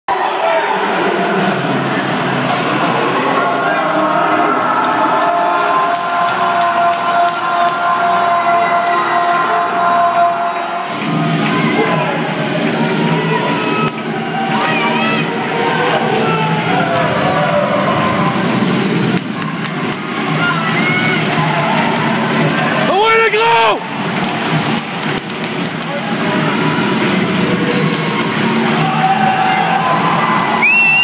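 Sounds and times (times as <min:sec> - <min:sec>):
crowd cheering and shouting: 0:00.1 - 0:31.0.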